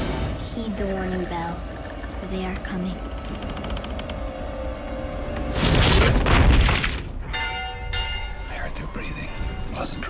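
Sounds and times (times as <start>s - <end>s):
loud booming crash: 5.5s - 7.2s
warning bell ringing: 7.2s - 10.0s.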